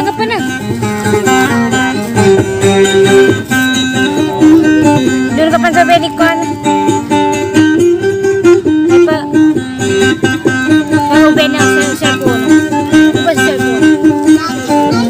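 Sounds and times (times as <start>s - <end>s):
plucked lute melody: 0.0s - 15.0s.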